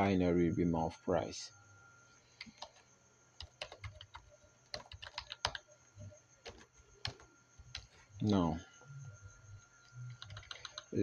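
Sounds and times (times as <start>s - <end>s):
typing on computer keyboard: 2.4s - 2.8s, 3.4s - 5.7s, 6.4s - 8.0s, 10.1s - 11.0s.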